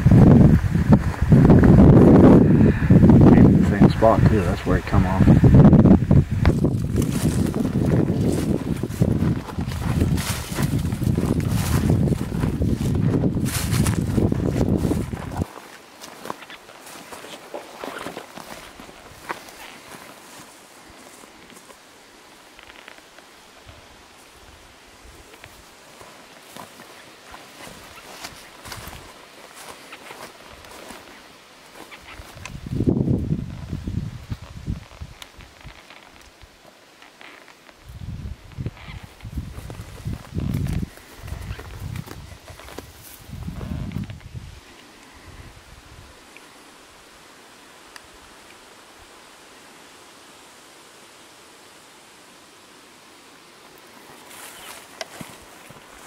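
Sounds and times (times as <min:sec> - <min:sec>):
footsteps through dry grass: 0:00.0 - 0:46.0, 0:53.8 - 0:56.0.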